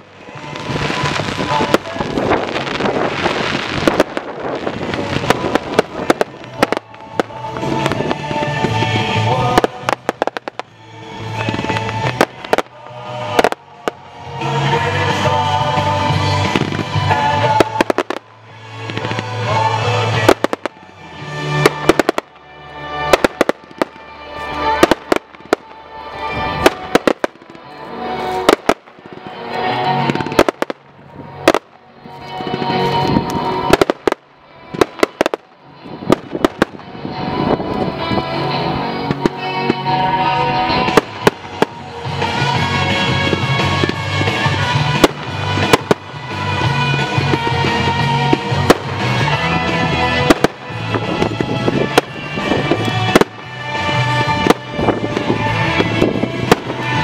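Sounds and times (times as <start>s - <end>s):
fireworks bangs and crackles: 0.0s - 57.0s
loud music: 0.0s - 57.0s.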